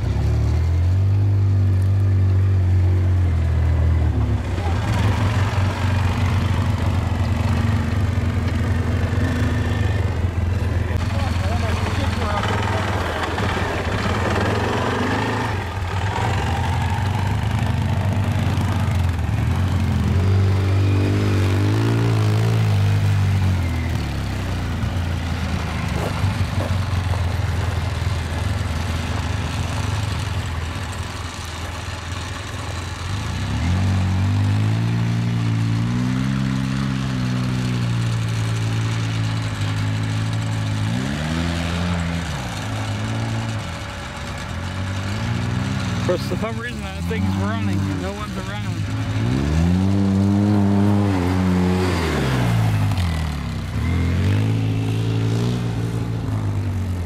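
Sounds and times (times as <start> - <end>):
atv engine revving: 0.0 - 57.0.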